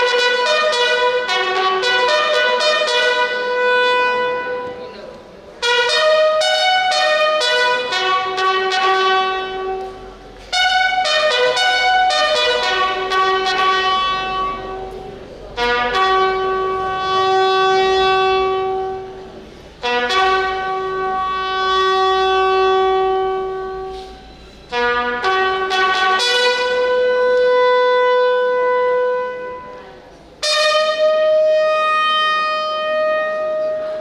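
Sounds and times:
slow bugle call: 0.0s - 4.9s, 5.6s - 19.2s, 19.8s - 29.8s, 30.4s - 34.0s.

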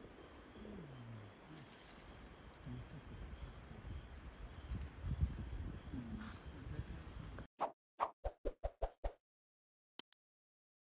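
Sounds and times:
outdoor background noise: 0.0s - 7.5s.

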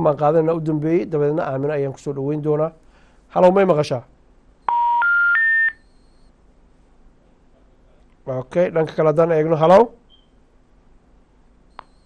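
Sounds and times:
telephone rising beeps: 4.6s - 6.3s, 11.7s - 12.0s.

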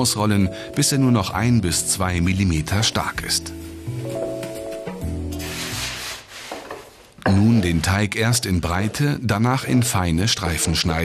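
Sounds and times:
background music with held notes: 0.0s - 8.1s
hand rubbing over dough: 5.4s - 7.1s.

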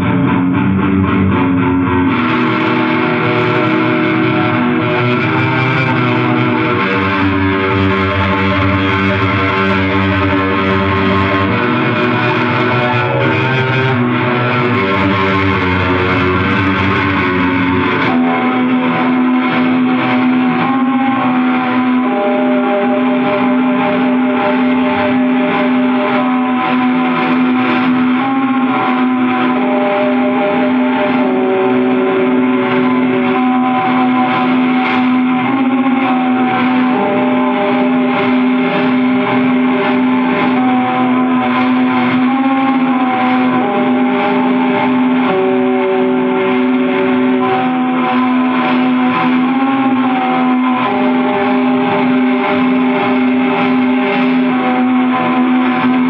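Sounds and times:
distorted metal music drone: 0.0s - 56.0s.

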